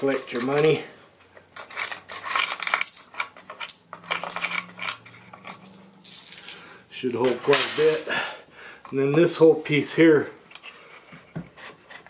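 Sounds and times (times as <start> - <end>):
coins rattling in wooden box: 0.0 - 0.8, 1.6 - 6.6.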